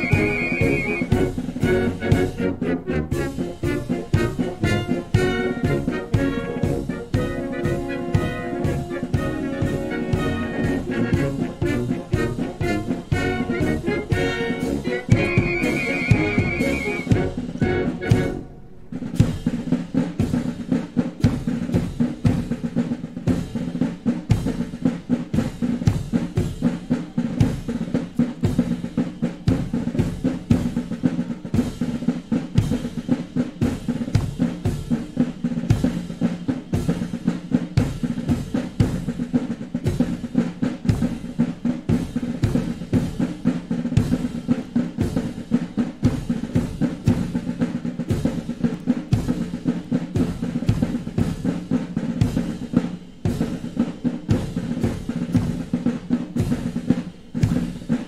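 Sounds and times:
military band march: 0.0s - 58.0s
snare and bass drum beat: 0.0s - 58.0s.

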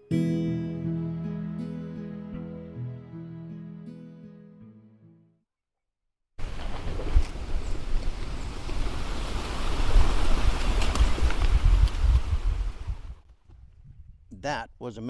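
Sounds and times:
flock of birds taking off: 6.4s - 13.0s
wind rumbling on microphone: 6.4s - 14.4s.

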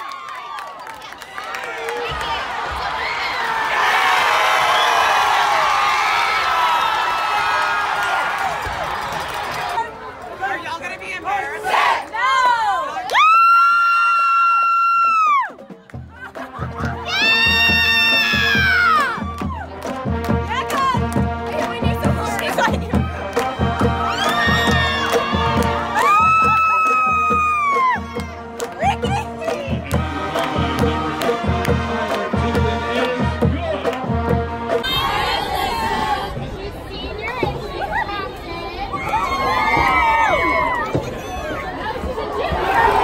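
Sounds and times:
crowd noise and shouting: 0.0s - 43.0s
marching band playing: 15.5s - 36.5s
low drum beat: 15.6s - 34.8s.

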